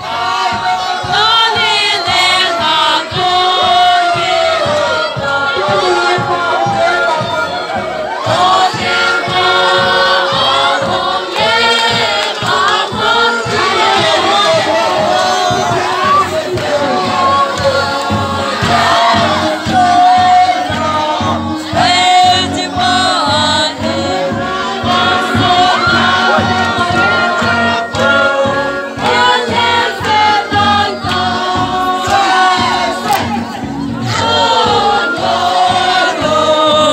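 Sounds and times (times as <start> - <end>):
crowd singing together: 0.0 - 36.9
steady low beat: 0.0 - 36.9.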